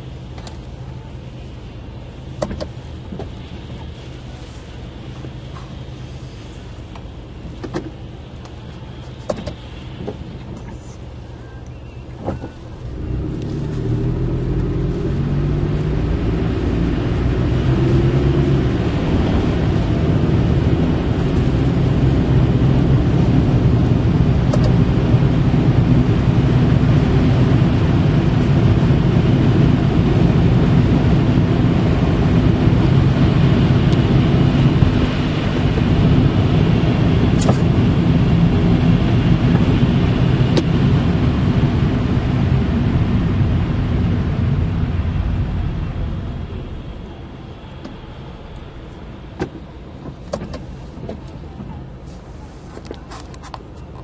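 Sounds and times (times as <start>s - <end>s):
car engine idling: 0.0s - 54.0s
tyres and engine rumble: 0.0s - 54.0s.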